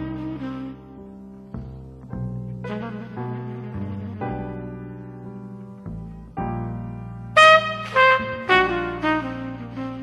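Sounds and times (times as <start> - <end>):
jazz trumpet: 0.0 - 1.8, 2.5 - 5.6, 7.2 - 10.0
bass accompaniment: 0.0 - 10.0
sustained piano: 0.0 - 10.0.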